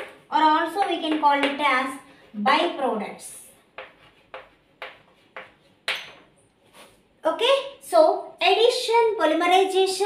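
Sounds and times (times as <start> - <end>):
chalk scraping on blackboard: 3.7 - 5.8.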